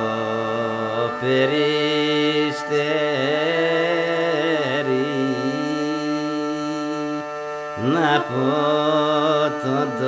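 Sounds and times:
bagpipe drone and melody: 0.0s - 10.0s
person singing long note: 0.0s - 10.0s.

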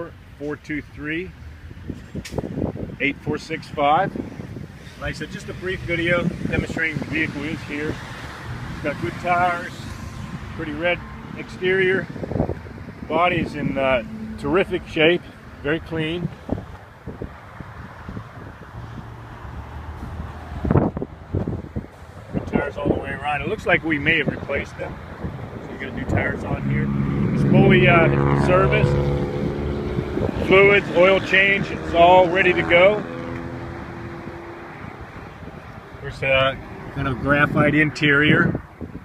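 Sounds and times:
wind rumbling on microphone: 1.6s - 39.0s.

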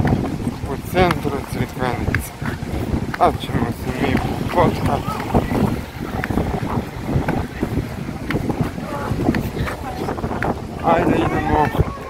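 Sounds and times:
faint voices: 0.0s - 12.0s
wind buffeting microphone: 0.0s - 12.0s.

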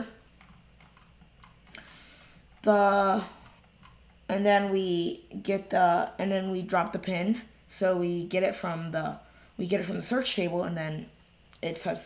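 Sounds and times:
computer keyboard clicks: 0.4s - 1.9s.

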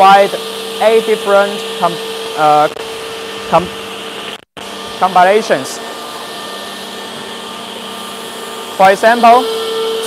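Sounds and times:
machinery whirring and hissing: 0.0s - 10.0s.

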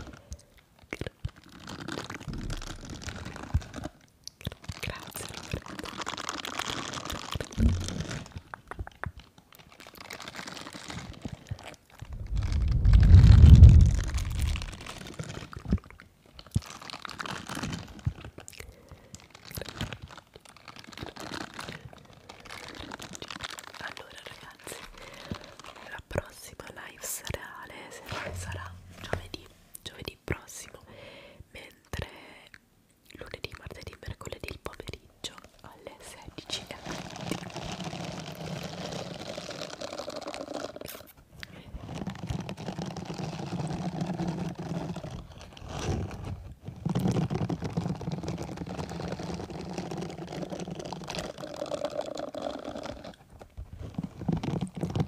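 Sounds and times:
rubber bristles rubbing microphone: 7.5s - 8.4s, 12.0s - 15.5s, 28.0s - 29.7s, 41.8s - 55.0s.

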